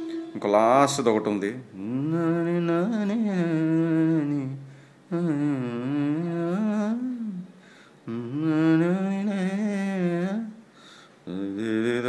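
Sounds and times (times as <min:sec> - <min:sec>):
man humming a melody: 0:00.0 - 0:01.0, 0:01.7 - 0:07.5, 0:08.1 - 0:10.5, 0:11.3 - 0:12.0.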